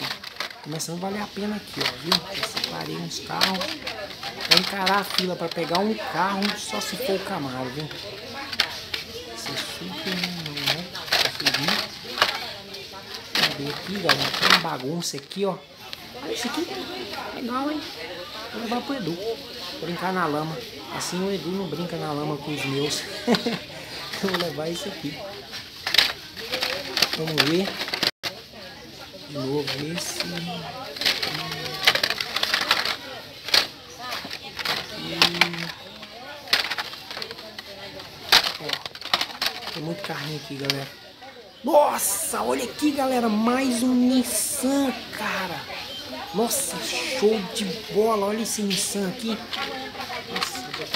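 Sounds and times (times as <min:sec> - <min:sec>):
plastic packs clattering: 0:00.0 - 0:50.9.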